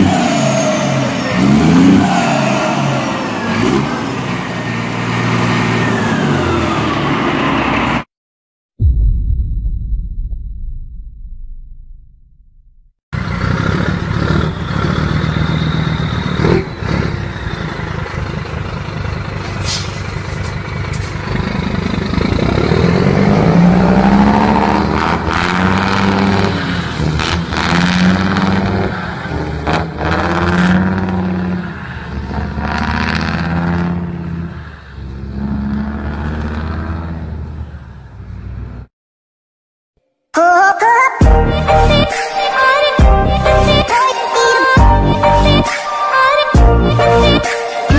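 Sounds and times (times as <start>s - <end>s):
diesel truck engine revving: 0.0s - 8.1s, 13.2s - 38.9s.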